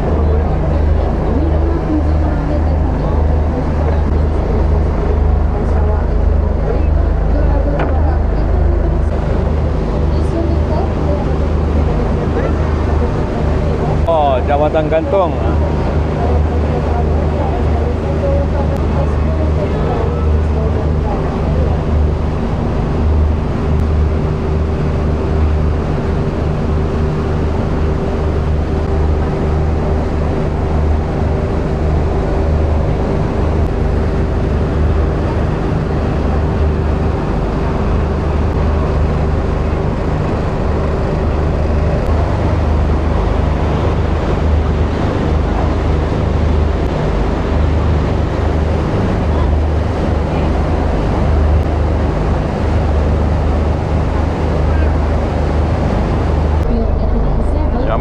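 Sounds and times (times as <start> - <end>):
water rushing in wake: 0.0 - 57.8
boat engine droning: 0.0 - 58.0.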